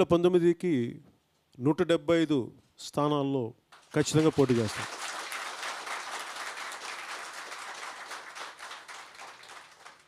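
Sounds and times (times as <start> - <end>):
crowd applauding: 3.8 - 10.0.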